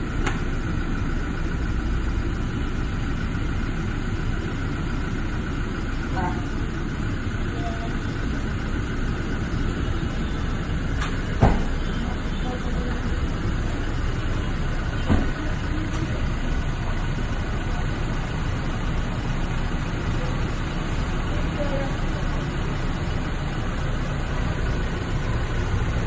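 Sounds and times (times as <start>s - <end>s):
car engine idling: 0.0s - 26.0s.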